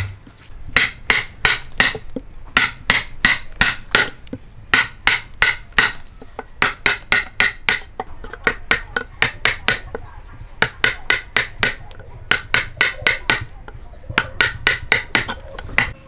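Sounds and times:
hammer striking chisel into log: 0:00.8 - 0:06.0, 0:06.6 - 0:10.0, 0:10.6 - 0:13.5, 0:14.2 - 0:16.0.

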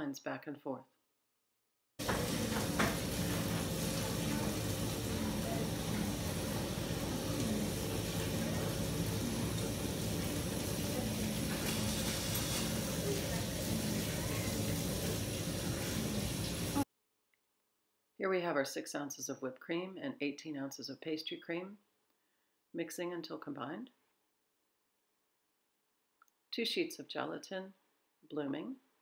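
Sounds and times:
kitchen hiss with low hum: 0:02.0 - 0:16.9
faint voices: 0:03.8 - 0:16.8.

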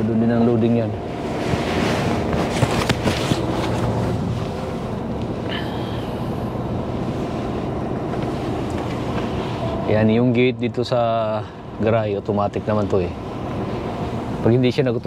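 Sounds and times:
diesel truck engine running: 0:00.0 - 0:15.0.

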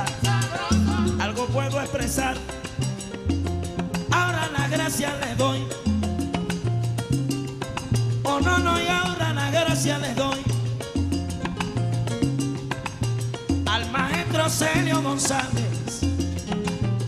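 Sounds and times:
repeating bass figure: 0:00.0 - 0:17.0
salsa band playing: 0:00.0 - 0:17.0.

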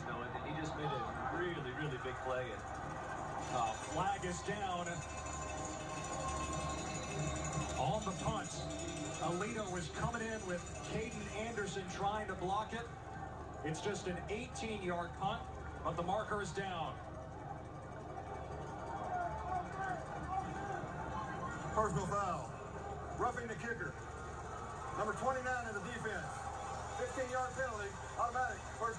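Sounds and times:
faint indistinct voices: 0:00.0 - 0:28.9
football broadcast on television: 0:00.0 - 0:28.9
stadium crowd murmur: 0:00.0 - 0:28.9.

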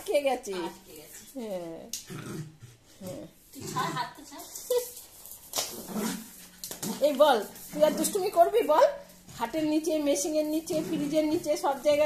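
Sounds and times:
small dog growling: 0:02.0 - 0:04.2.

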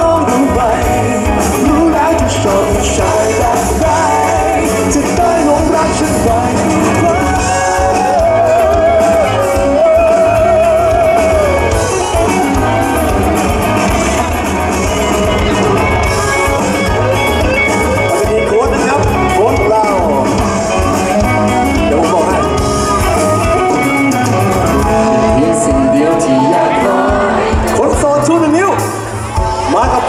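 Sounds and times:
man singing into a microphone: 0:00.0 - 0:11.8, 0:24.8 - 0:28.0.

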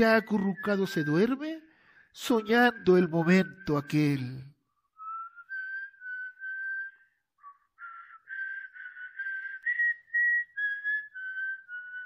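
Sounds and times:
person whistling a slow melody: 0:00.0 - 0:12.0.

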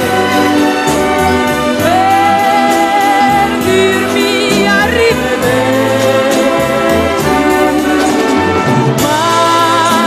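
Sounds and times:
orchestral pop ballad with brass: 0:00.0 - 0:10.0.

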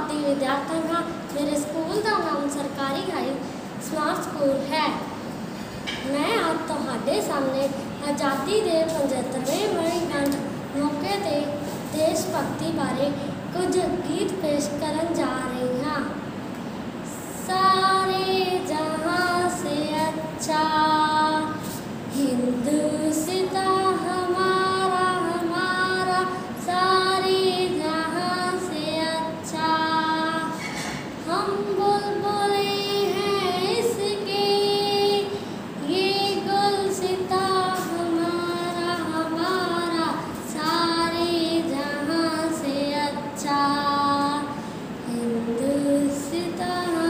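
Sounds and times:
girl singing unaccompanied: 0:00.0 - 0:47.0.

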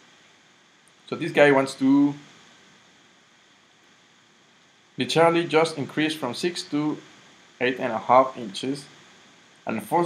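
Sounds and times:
faint microphone hiss: 0:00.0 - 0:10.0.

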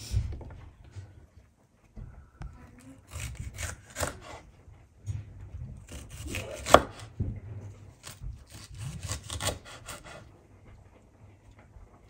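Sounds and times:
knife slicing pepper: 0:03.0 - 0:04.5, 0:05.8 - 0:07.2, 0:07.9 - 0:10.3.

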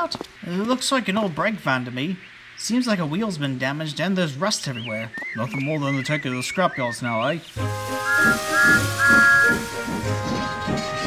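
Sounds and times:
background music: 0:07.5 - 0:11.0
steam locomotive whistle: 0:07.6 - 0:11.0.

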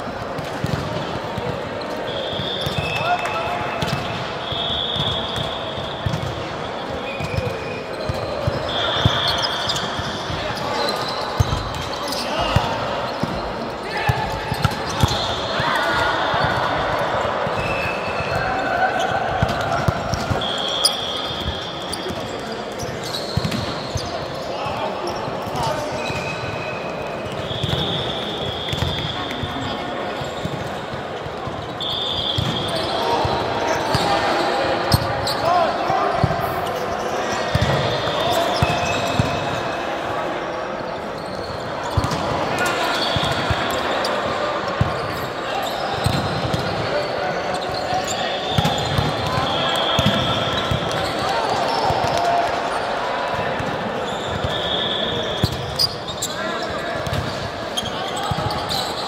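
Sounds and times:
ball bouncing on court: 0:00.4 - 0:01.6, 0:05.0 - 0:06.5, 0:23.1 - 0:24.1, 0:37.5 - 0:38.0, 0:38.6 - 0:39.4, 0:41.9 - 0:42.4, 0:46.0 - 0:46.8, 0:48.5 - 0:52.3, 0:57.0 - 0:58.7
sneakers squeaking: 0:00.6 - 0:59.0.

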